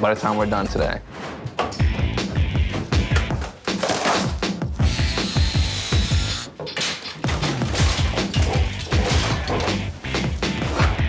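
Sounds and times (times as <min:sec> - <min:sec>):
wood knocking and cracking: 0:01.5 - 0:04.5, 0:06.5 - 0:11.0
background music with steady beat: 0:01.6 - 0:06.5, 0:07.3 - 0:11.0
power tool noise: 0:04.8 - 0:06.5.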